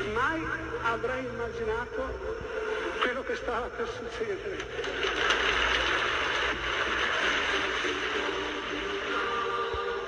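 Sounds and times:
choral voices singing: 0:07.5 - 0:10.0.

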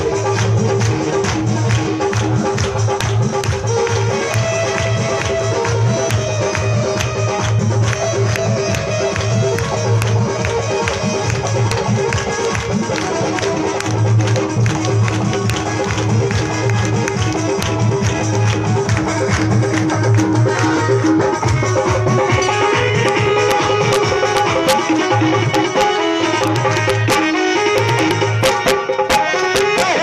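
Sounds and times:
pulsing bass: 0:00.0 - 0:28.7
fast steady percussion beat: 0:00.0 - 0:30.0
held melodic notes: 0:01.2 - 0:30.0.

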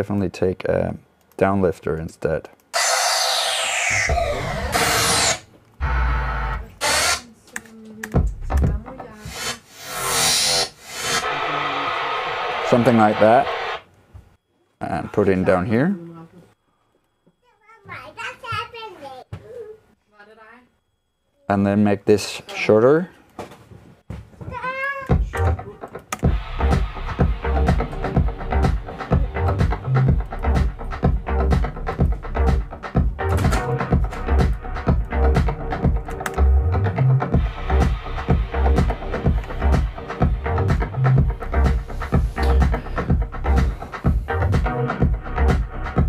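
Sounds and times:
ticking hi-hats: 0:25.2 - 0:36.6, 0:37.2 - 0:46.0
pulsing kick and bass: 0:26.2 - 0:46.0
deep house track: 0:26.3 - 0:36.8.

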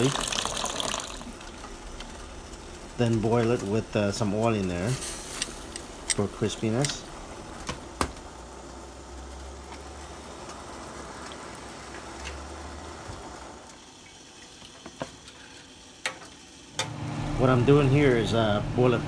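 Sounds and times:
water boiling in a pot: 0:00.0 - 0:18.9.

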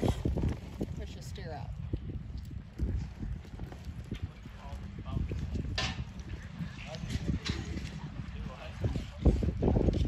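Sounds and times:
horse hooves on soft dirt: 0:00.0 - 0:10.0.

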